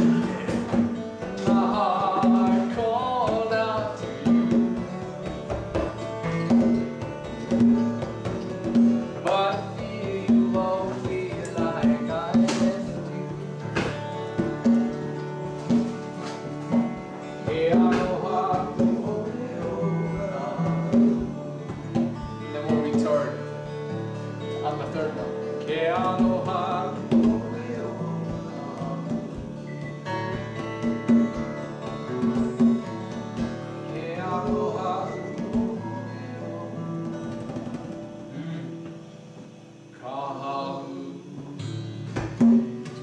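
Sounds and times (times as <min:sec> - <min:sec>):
man singing: 0:00.0 - 0:06.1, 0:09.0 - 0:15.2, 0:16.8 - 0:23.5, 0:24.4 - 0:37.5, 0:39.9 - 0:42.0
conga drum: 0:00.0 - 0:39.6, 0:41.4 - 0:43.0
acoustic guitar strumming: 0:00.0 - 0:43.0.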